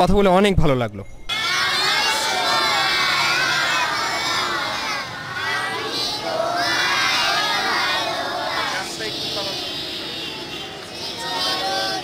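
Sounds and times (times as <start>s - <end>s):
crowd of children shouting: 1.3s - 12.0s.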